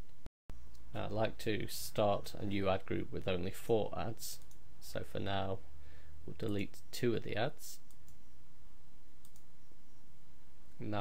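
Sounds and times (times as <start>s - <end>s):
low room hum: 0.0s - 11.0s
computer mouse click: 4.4s - 4.6s, 7.8s - 8.2s, 9.2s - 9.5s.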